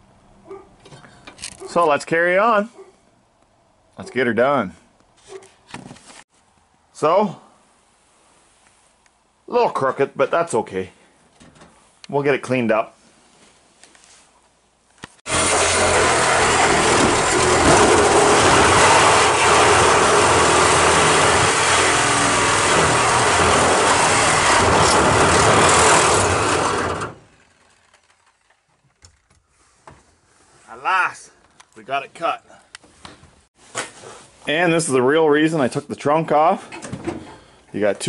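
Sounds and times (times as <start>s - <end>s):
reciprocating saw cutting sheet metal: 15.3s - 28.0s.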